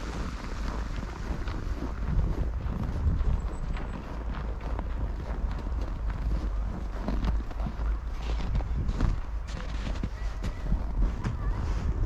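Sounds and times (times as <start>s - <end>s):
footsteps in snow: 0.0s - 12.0s
wind rumbling on microphone: 0.0s - 12.0s.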